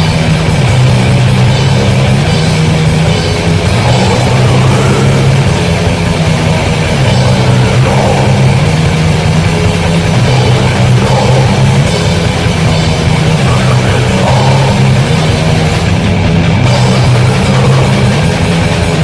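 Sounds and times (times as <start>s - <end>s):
distorted guitars and bass: 0.0s - 19.0s
fast drumming: 0.0s - 19.0s.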